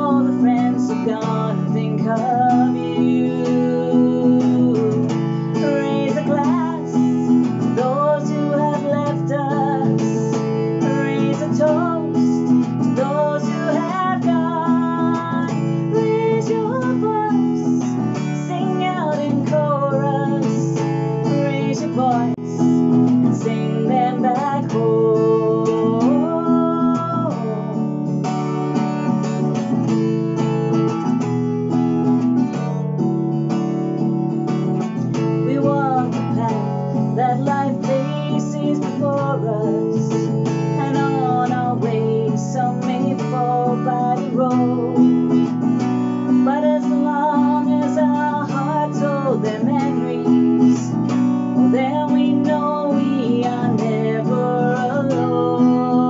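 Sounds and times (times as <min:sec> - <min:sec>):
woman singing: 0:00.0 - 0:30.2, 0:34.0 - 0:56.0
strummed acoustic guitar: 0:00.0 - 0:56.0.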